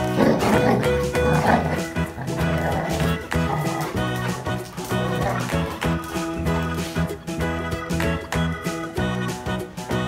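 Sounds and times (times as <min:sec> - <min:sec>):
dogs growling: 0:00.0 - 0:08.6
background music: 0:00.0 - 0:10.0.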